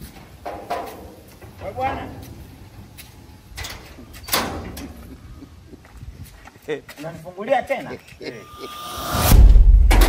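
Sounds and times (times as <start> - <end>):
metal gate clanking: 0.2 - 5.1.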